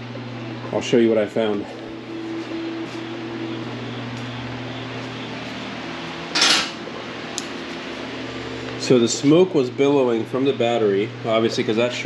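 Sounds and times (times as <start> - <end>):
shop fan humming: 0.0 - 12.0.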